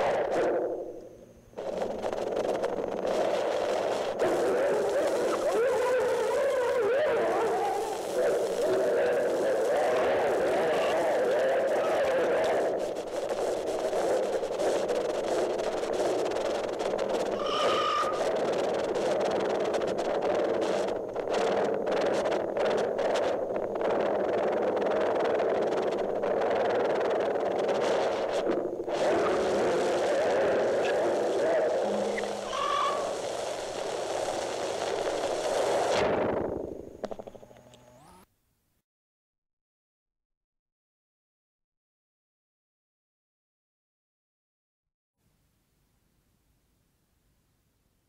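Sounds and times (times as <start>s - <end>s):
dense noise texture: 0.0s - 38.1s
brief pitched tones: 17.4s - 18.2s.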